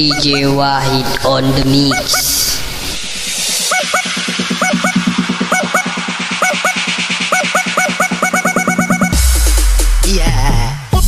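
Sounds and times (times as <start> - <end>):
honking horn stabs: 0.0 - 1.1, 3.6 - 9.3
fast bass pulse: 0.0 - 10.8.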